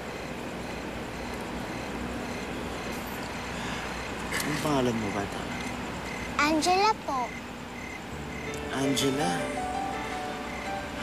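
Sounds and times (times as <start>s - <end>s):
distant traffic ambience: 0.0s - 11.0s
faint steady tones: 0.0s - 11.0s.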